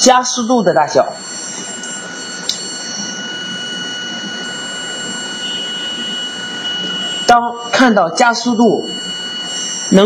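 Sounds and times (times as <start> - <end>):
motor running with high whine: 0.0 - 10.0.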